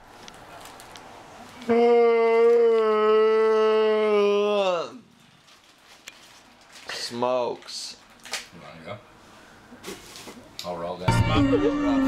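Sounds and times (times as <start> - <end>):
man howling: 1.7 - 5.0, 11.1 - 12.0.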